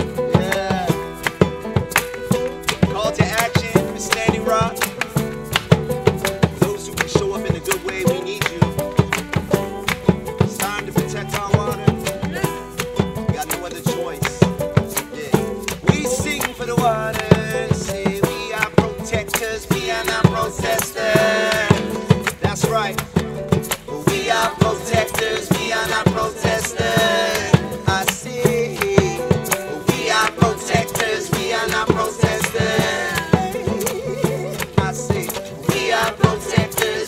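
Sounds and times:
banjo: 0:00.0 - 0:37.0
djembe beat: 0:00.0 - 0:37.0
fiddle: 0:00.0 - 0:37.0
strummed acoustic guitars: 0:00.0 - 0:37.0.

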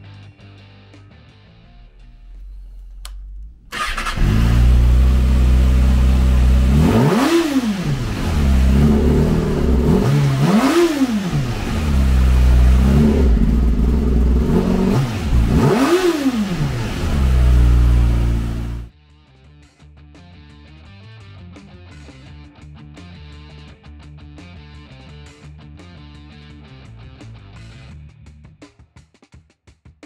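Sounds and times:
motorcycle engine idling and revving: 0:01.8 - 0:18.9
motorcycle engine starting: 0:02.1 - 0:18.9.

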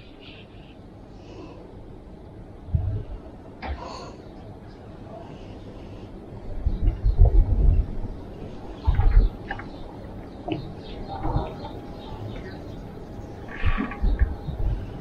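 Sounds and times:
wind buffeting microphone: 0:02.5 - 0:03.4, 0:06.2 - 0:15.0
faint chirps and ticks: 0:06.6 - 0:15.0.

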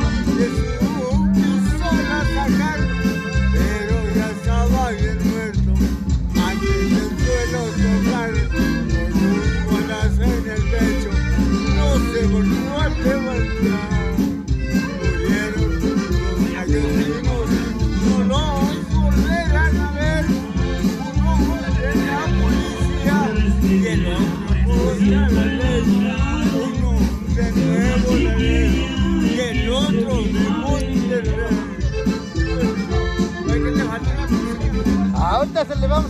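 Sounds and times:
person singing: 0:00.0 - 0:14.2, 0:21.2 - 0:31.9
accordion: 0:00.0 - 0:36.0
steady bass beat: 0:00.0 - 0:36.0.

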